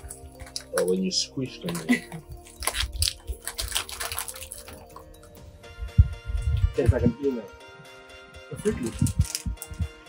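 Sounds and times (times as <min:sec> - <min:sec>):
plastic bag crinkling: 0:00.0 - 0:05.3, 0:08.6 - 0:09.9.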